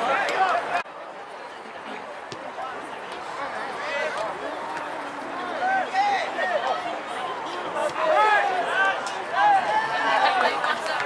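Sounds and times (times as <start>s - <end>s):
people shouting and calling out: 3.2s - 11.0s.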